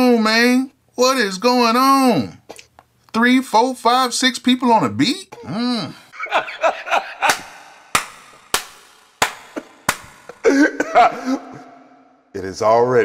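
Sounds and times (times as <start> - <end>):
man laughing: 5.6 - 7.8, 9.5 - 11.8
sharp smacks: 7.2 - 10.4.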